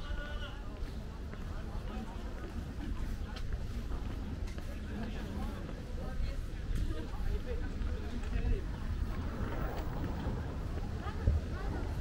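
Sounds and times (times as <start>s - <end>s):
passers-by talking: 0.0s - 12.0s
traffic rumble: 0.0s - 12.0s.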